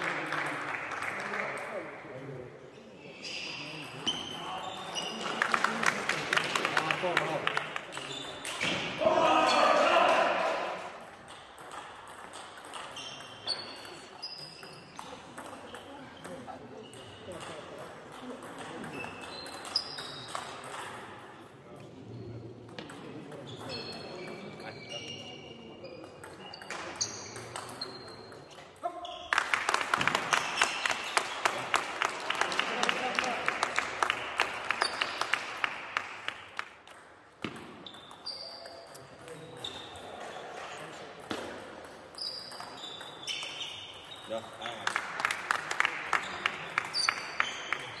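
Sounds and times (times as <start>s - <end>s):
shoe squeaks: 3.0s - 5.4s, 8.0s - 8.6s, 12.9s - 15.1s, 18.9s - 20.4s, 23.5s - 29.3s, 37.8s - 40.5s, 42.1s - 44.5s, 46.9s - 48.0s.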